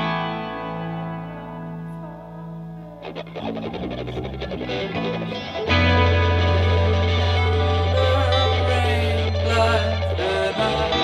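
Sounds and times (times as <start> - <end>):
electric guitar with effects: 0.0 - 11.0
picked guitar notes: 0.0 - 11.0.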